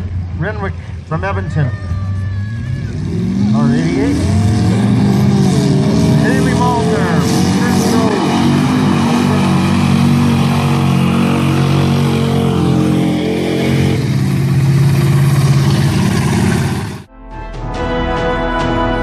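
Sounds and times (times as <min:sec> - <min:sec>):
truck engine running hard: 0:00.0 - 0:17.1
crowd voices: 0:01.0 - 0:13.9.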